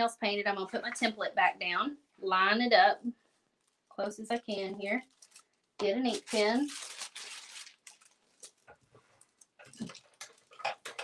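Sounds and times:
rustling of paper and supplies: 3.6s - 11.0s.

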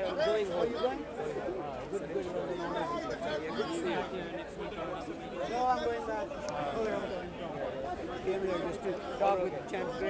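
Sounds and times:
men talking at once: 0.0s - 10.0s.

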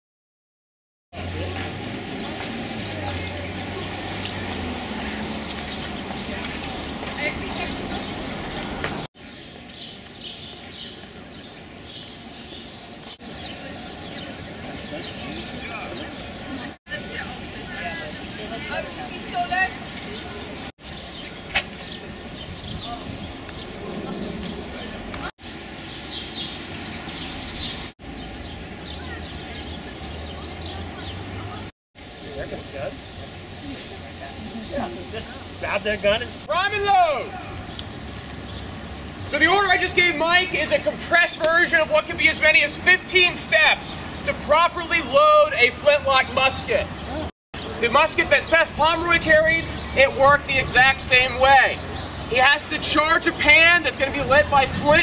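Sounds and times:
outdoor background noise: 1.1s - 55.0s
distant voices: 1.2s - 55.0s
small birds chirping: 1.2s - 55.0s.

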